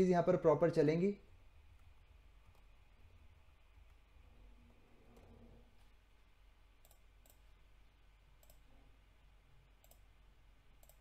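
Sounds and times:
computer mouse clicks: 5.0s - 5.9s, 6.8s - 7.6s, 8.4s - 8.8s, 9.8s - 10.1s, 10.7s - 11.0s.

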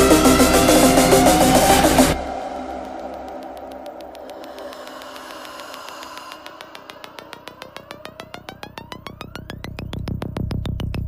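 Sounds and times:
upward sweeping tone: 0.0s - 10.0s
rapidly pulsing synth: 0.0s - 11.0s.

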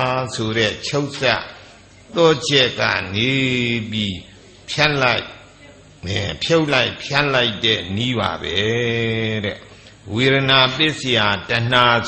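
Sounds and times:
elderly man chanting: 0.0s - 12.0s.

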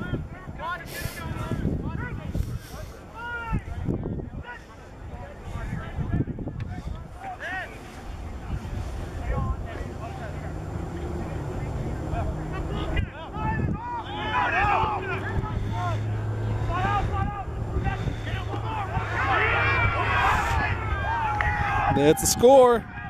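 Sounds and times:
people shouting outdoors: 0.0s - 6.2s, 6.8s - 23.0s
wind rumble on microphone: 0.0s - 23.0s.

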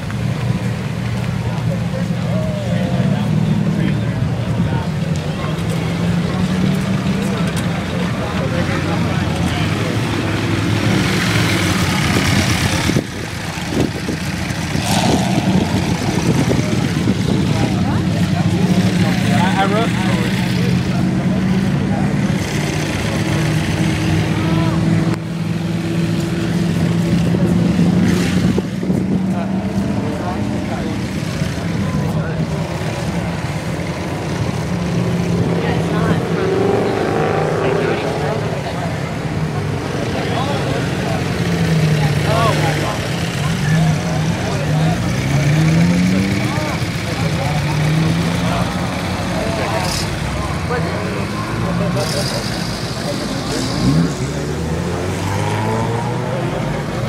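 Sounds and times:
car engine revving: 0.0s - 57.0s
crowd chatter: 0.0s - 57.0s
supercar engines at low revs: 0.0s - 57.0s.

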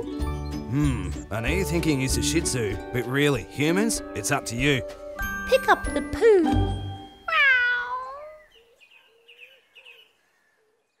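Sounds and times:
cat meowing: 7.3s - 8.5s.

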